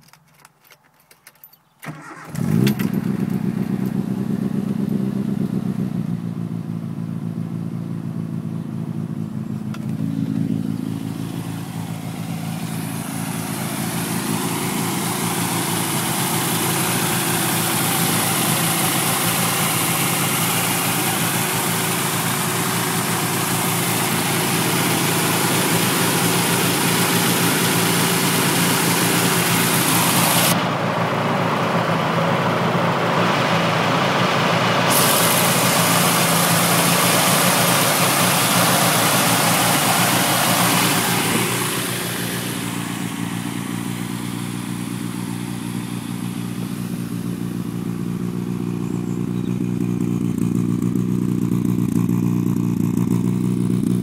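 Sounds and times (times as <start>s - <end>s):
car engine idling: 1.8s - 54.0s.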